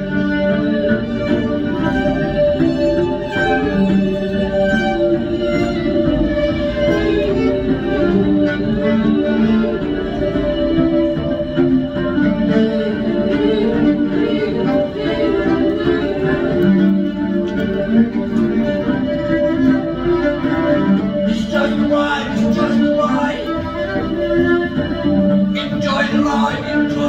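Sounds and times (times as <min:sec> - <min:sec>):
fiddle playing: 0:00.0 - 0:27.0
person singing: 0:06.7 - 0:19.2, 0:21.2 - 0:27.0.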